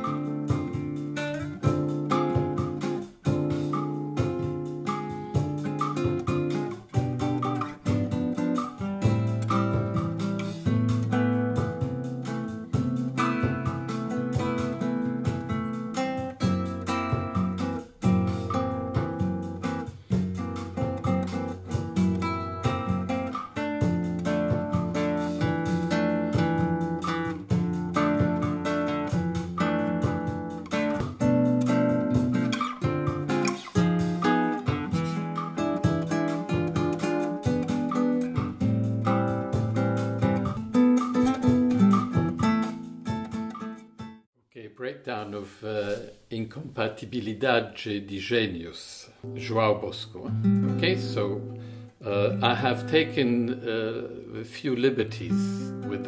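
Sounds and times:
fingerpicked nylon-string guitar: 0:00.0 - 0:44.2, 0:49.2 - 0:56.0.

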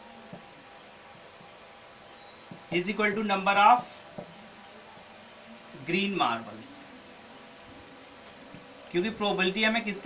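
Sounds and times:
faint buzzing hum: 0:00.0 - 0:10.0.

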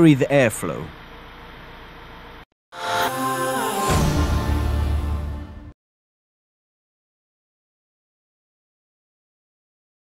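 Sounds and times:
music jingle: 0:02.7 - 0:05.8.

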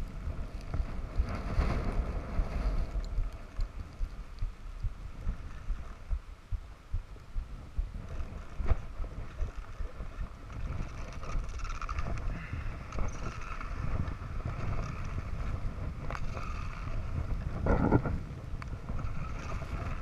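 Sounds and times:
skis sliding over snow: 0:00.0 - 0:06.1, 0:07.9 - 0:20.0
wind buffeting microphone: 0:00.0 - 0:20.0.

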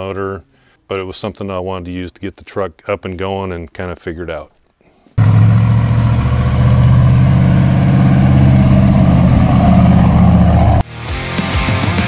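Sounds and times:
truck engine running: 0:05.2 - 0:10.8
loud heavy rock music: 0:10.2 - 0:12.0.

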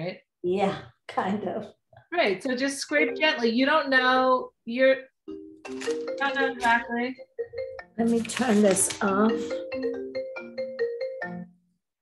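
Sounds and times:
phone alarm ringtone: 0:05.3 - 0:08.2, 0:09.0 - 0:11.6.

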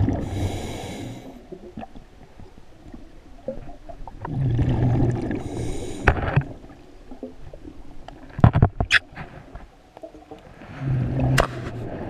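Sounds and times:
underwater breath bubbling: 0:00.0 - 0:01.9, 0:04.3 - 0:06.8, 0:10.5 - 0:12.0.

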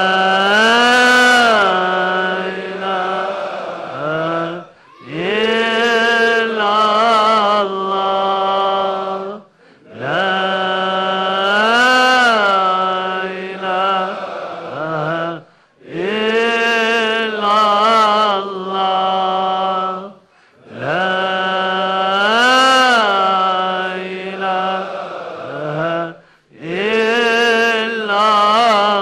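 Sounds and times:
person chanting: 0:00.0 - 0:29.0.

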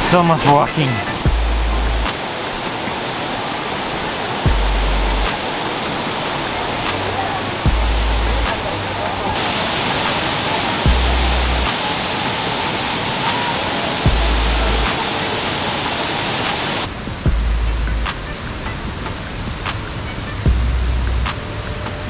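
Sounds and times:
cascading water rushing: 0:00.0 - 0:22.0
music with deep bass notes: 0:00.9 - 0:02.2, 0:04.5 - 0:05.4, 0:06.8 - 0:09.4, 0:10.8 - 0:11.8, 0:14.0 - 0:14.9, 0:17.0 - 0:22.0.

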